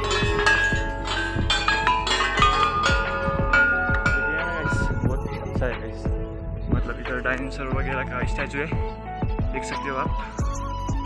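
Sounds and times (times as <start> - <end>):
bell-like melody: 0.0 - 9.1
deep kick drums: 0.0 - 11.0.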